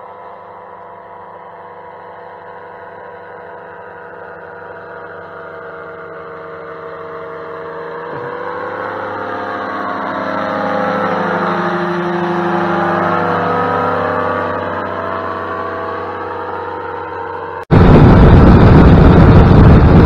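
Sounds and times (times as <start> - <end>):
aircraft engine and propeller droning: 0.0 - 20.0.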